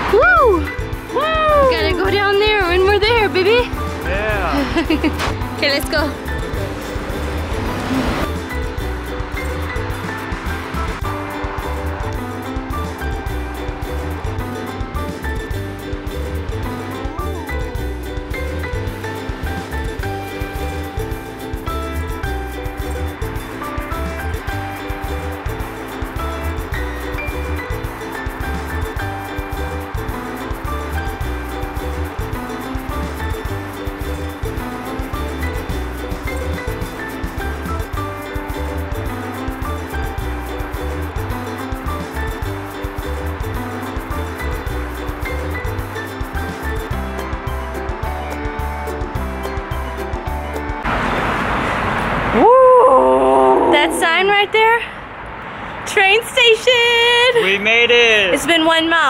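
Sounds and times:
background music with steady beat: 0:00.0 - 0:50.9.

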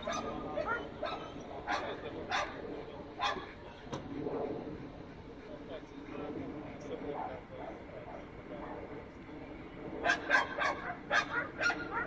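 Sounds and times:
dog barking: 0:00.0 - 0:02.6, 0:03.2 - 0:03.5, 0:10.0 - 0:12.0
faint voices: 0:00.0 - 0:12.0.

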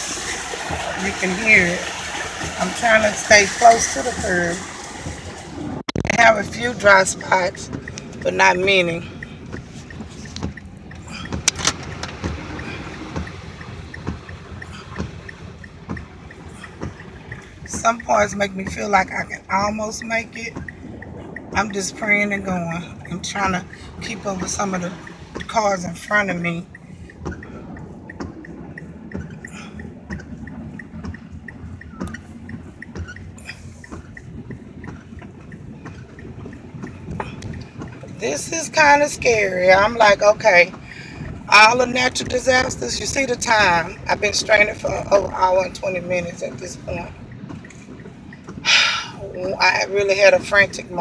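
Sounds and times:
engine and tyre rumble: 0:00.0 - 0:51.0
water swishing against car: 0:00.0 - 0:51.0
faint quick ticking: 0:05.9 - 0:45.7
thumps: 0:23.0 - 0:48.7.

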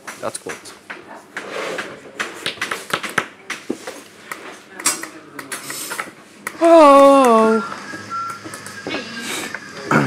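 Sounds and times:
indistinct low talk: 0:08.9 - 0:10.0.

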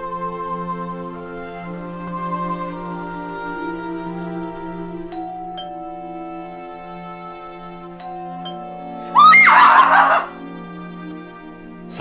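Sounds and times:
woman screaming: 0:09.2 - 0:10.3.

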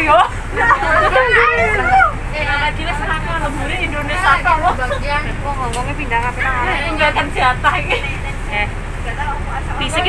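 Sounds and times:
bus engine rumble: 0:00.0 - 0:10.0
people talking: 0:00.0 - 0:10.0.

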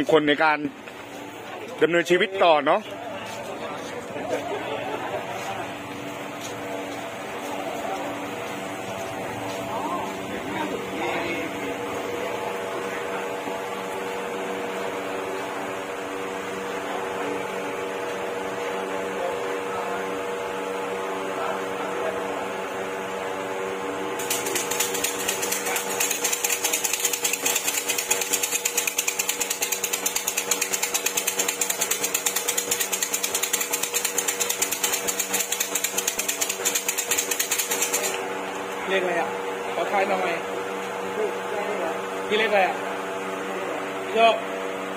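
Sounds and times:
steady multi-tone hum: 0:00.0 - 0:44.9
wooden sticks rattling in cylinders: 0:24.2 - 0:38.2.

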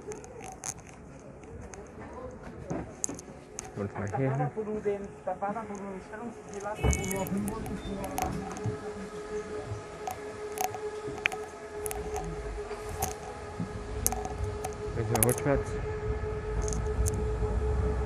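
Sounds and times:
electric whine of train: 0:00.0 - 0:18.0
low running rumble: 0:00.0 - 0:18.0
passengers talking: 0:00.0 - 0:18.0.

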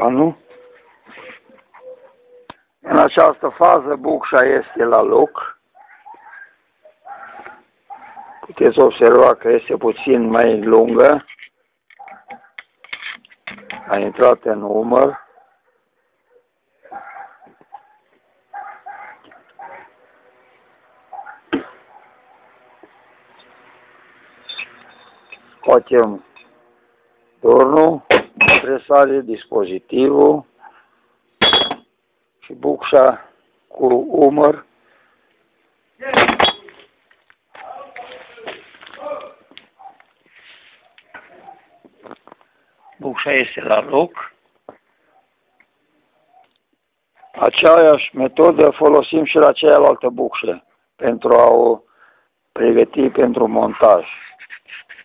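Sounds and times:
metal tool parts clinking: 0:11.2 - 0:13.8, 0:24.5 - 0:25.5, 0:31.4 - 0:31.8, 0:36.2 - 0:36.9
loud metal clank: 0:31.4 - 0:31.8.

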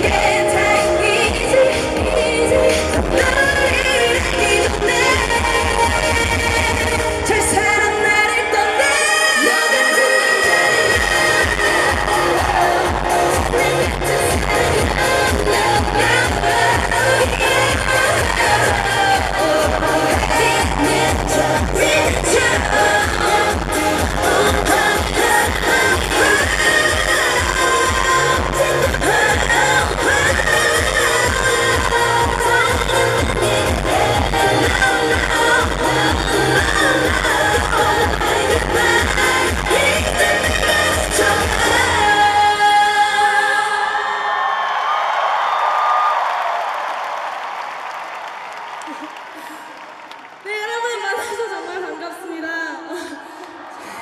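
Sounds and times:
dance-pop backing track: 0:00.0 - 0:44.0
woman singing live: 0:00.0 - 0:44.5, 0:50.4 - 0:54.0
stadium crowd cheering: 0:07.3 - 0:35.1, 0:42.5 - 0:51.9.

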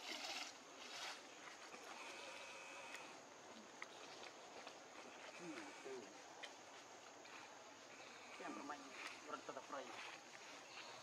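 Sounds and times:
faint insect buzz: 0:00.0 - 0:04.0
quiet forest ambience: 0:00.0 - 0:11.0.

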